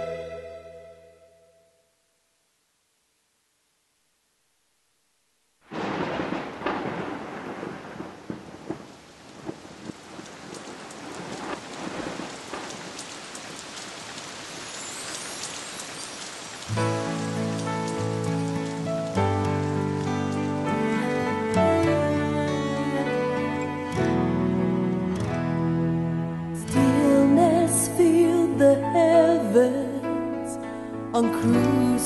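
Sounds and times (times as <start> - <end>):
slow instrumental music: 0.0 - 1.8, 16.7 - 32.0
steady rain: 1.9 - 30.0
thunder rumbling: 5.7 - 23.5.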